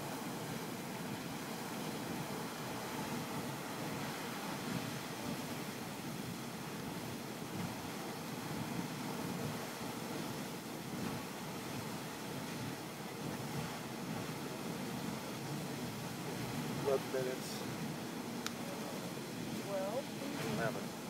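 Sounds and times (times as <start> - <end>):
geyser water rushing and splashing: 0.0 - 21.0.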